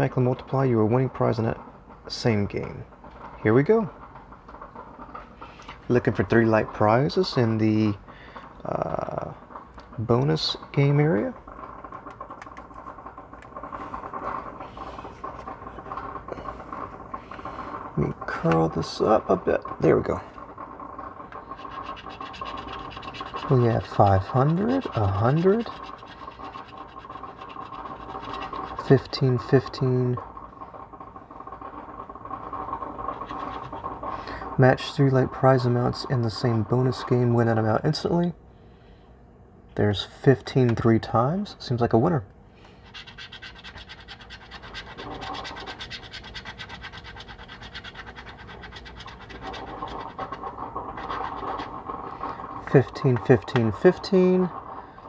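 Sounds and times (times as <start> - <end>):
coin scratching lottery ticket: 21.4 - 29.7, 33.0 - 34.0, 42.8 - 52.1.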